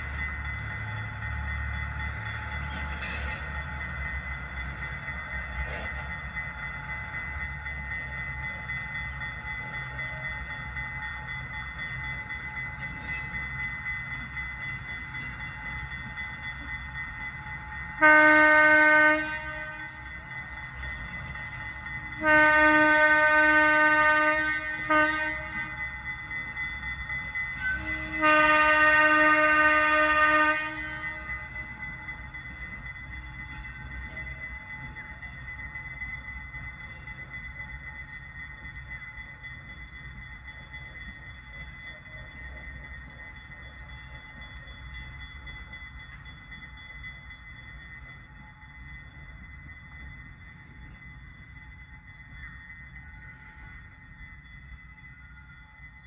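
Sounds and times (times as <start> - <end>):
train rolling rumble: 0.0 - 56.0
locomotive horn blasts: 18.0 - 19.9, 22.2 - 25.8, 27.6 - 31.4.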